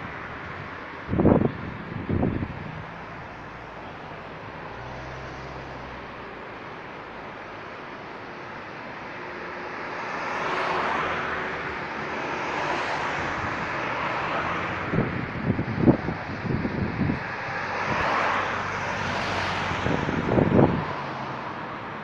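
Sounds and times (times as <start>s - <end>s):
wind buffeting microphone: 0.0s - 3.6s, 13.0s - 21.7s
cars passing: 0.0s - 22.0s.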